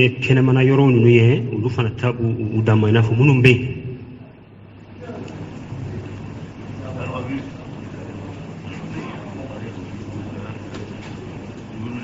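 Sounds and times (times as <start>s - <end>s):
low background hum: 0.0s - 12.0s
faint voices: 4.1s - 12.0s.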